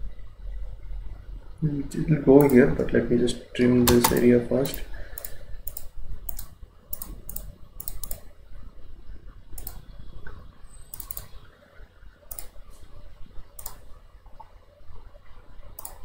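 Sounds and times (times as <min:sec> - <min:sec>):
mouse and keyboard clicks: 0:03.9 - 0:08.3, 0:09.6 - 0:09.8, 0:10.9 - 0:11.4, 0:12.3 - 0:12.6, 0:13.6 - 0:13.8, 0:15.8 - 0:16.0.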